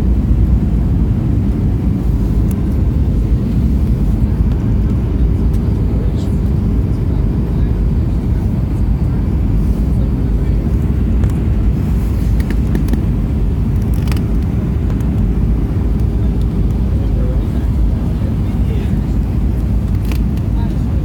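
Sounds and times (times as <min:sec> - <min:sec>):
airliner engines and airflow rumble: 0:00.0 - 0:21.0
constant cabin hum: 0:00.0 - 0:21.0.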